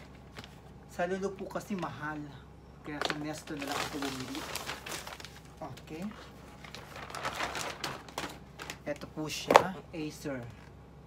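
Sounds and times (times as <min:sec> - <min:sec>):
plastic bag rustling: 0:00.0 - 0:09.1.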